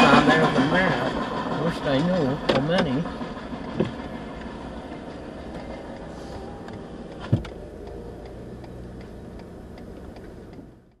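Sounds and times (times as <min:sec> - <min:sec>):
car engine idling: 0:00.0 - 0:11.0
faint regular ticking: 0:00.5 - 0:11.0.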